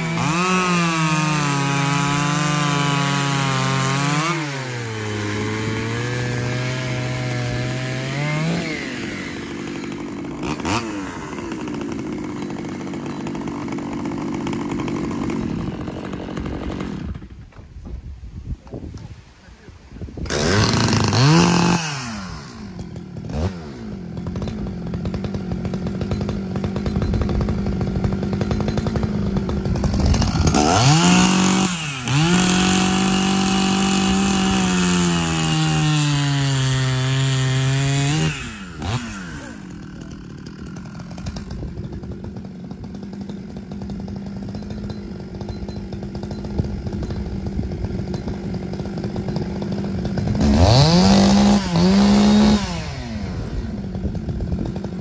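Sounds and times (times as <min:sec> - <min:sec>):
chainsaw revving and cutting log: 0:00.0 - 0:17.6, 0:20.2 - 0:55.0.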